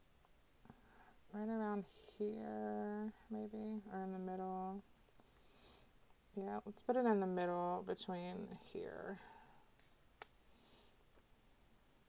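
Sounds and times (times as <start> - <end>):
faint paper rustle: 9.2 - 10.4.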